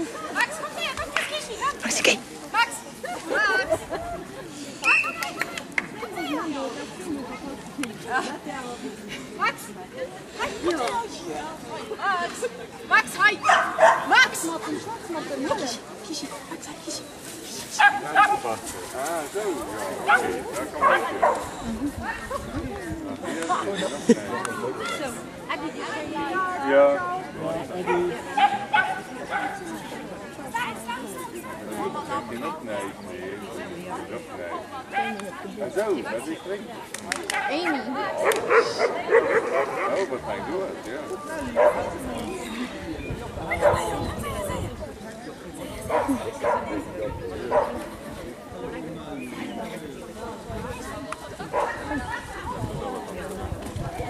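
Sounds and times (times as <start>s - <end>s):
people talking: 0.0s - 54.0s
people's voices: 0.0s - 54.0s
dog barking: 13.4s - 14.1s.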